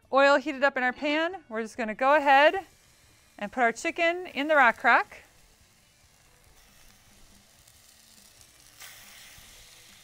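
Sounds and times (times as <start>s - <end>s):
chicken sizzling in hot oil: 2.0s - 10.0s.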